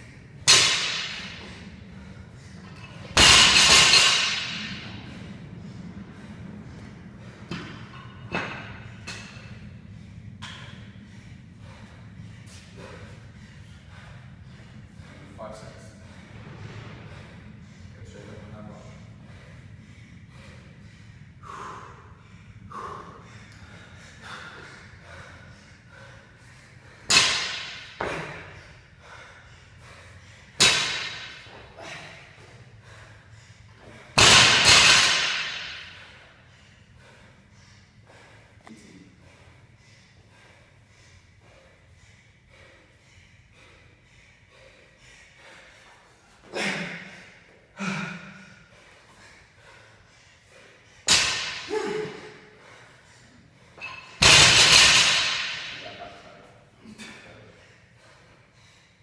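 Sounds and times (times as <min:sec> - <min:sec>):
barbell crashing onto rubber mat: 0:54.2 - 0:55.8.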